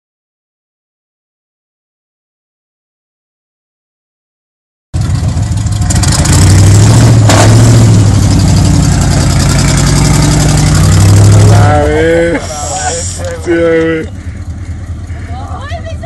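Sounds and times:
engine running hard under load: 5.0s - 16.0s.

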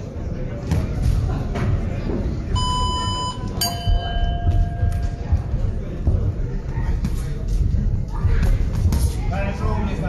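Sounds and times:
short electronic beep: 2.6s - 4.9s
ring bell strike: 3.6s - 5.2s.

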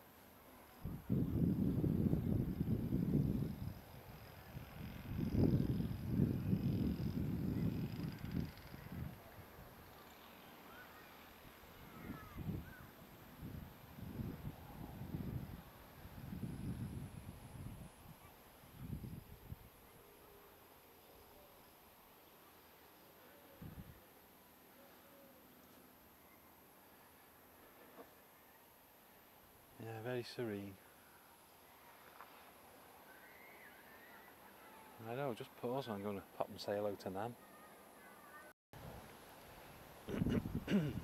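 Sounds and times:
wind buffeting microphone: 0.8s - 9.2s, 40.1s - 41.0s.

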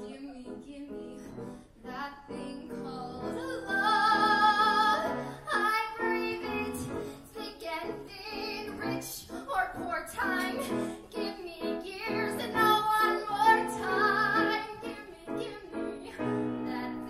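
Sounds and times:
piano accompaniment: 0.0s - 17.0s
woman singing: 0.0s - 17.0s.

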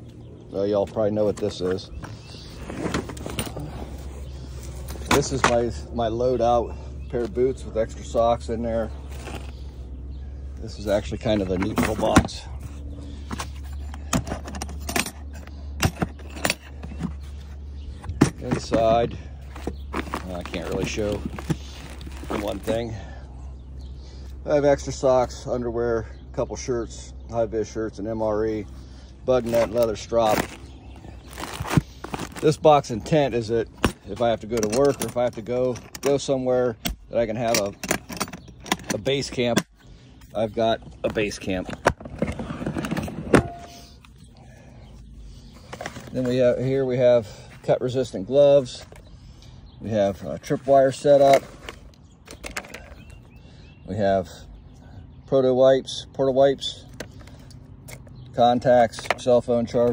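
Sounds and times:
storage box clicks and metallic rattles: 4.8s - 5.8s, 10.9s - 12.4s, 13.2s - 22.8s, 29.4s - 39.7s, 40.4s - 44.2s, 50.3s - 53.2s.

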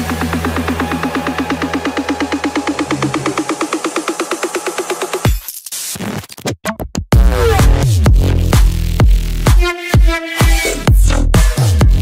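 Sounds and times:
electronic dance music: 0.0s - 5.4s, 7.2s - 12.0s
rushing noise sweep: 2.4s - 4.4s.

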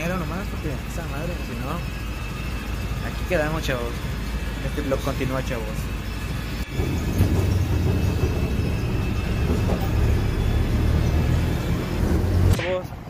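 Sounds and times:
bus engine and road rumble: 6.7s - 13.0s.

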